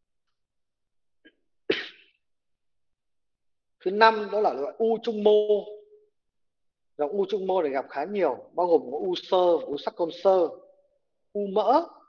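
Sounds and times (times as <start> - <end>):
person coughing: 1.7 - 2.2.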